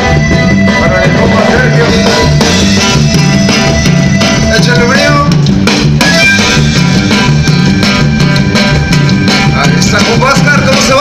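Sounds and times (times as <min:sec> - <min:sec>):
accordion: 0:00.0 - 0:11.0
bass and drum beat: 0:00.0 - 0:11.0
live band playing amplified music: 0:00.0 - 0:11.0.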